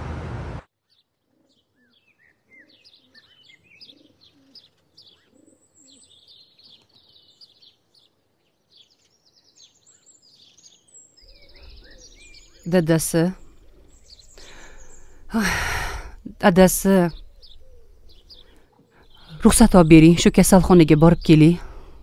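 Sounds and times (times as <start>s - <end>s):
small birds chirping: 0.8s - 22.0s
dove cooing: 1.3s - 6.1s, 11.3s - 12.7s, 13.4s - 18.6s.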